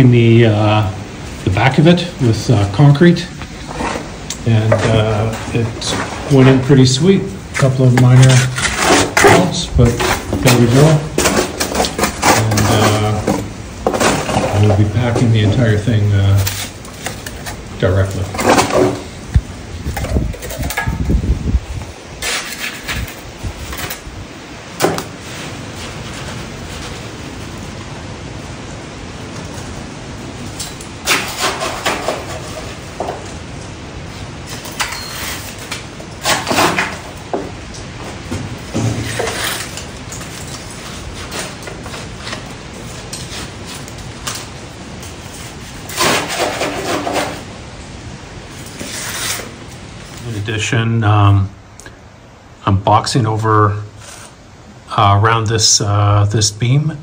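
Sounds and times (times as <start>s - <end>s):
steady background hiss: 0.0s - 57.0s
mortar scraping and rubbing: 1.6s - 19.2s, 22.2s - 24.0s, 31.0s - 33.3s, 34.4s - 37.2s, 38.1s - 47.6s, 48.6s - 50.4s, 54.0s - 54.4s.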